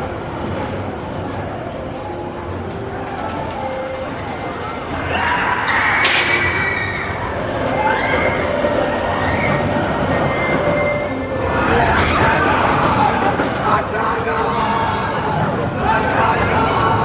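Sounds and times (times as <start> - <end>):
roller coaster train rumbling: 0.0 - 17.0
riders shouting and screaming: 5.0 - 14.1
sharp clack: 6.0 - 6.6.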